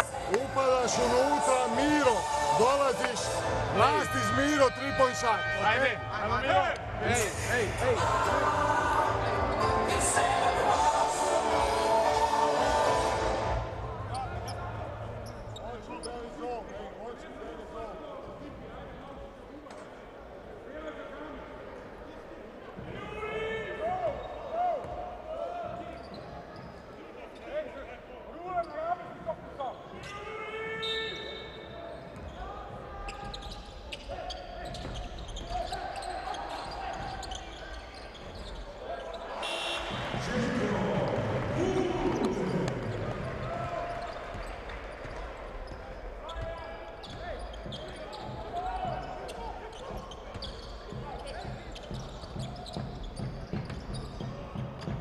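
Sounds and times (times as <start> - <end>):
indistinct voices: 0.0 - 15.3, 39.4 - 44.2
crowd noise: 0.0 - 55.0
basketball bouncing on court: 32.0 - 37.4, 42.1 - 55.0.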